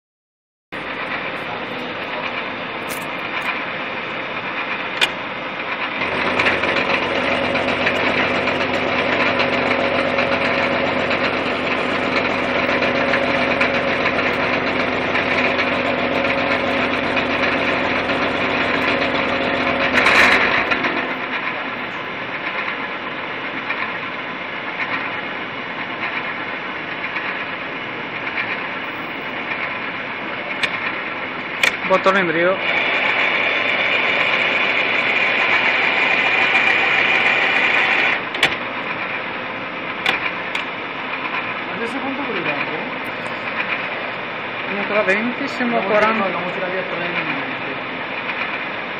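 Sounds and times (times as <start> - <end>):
milling machine cutting steel: 0.8 - 48.9.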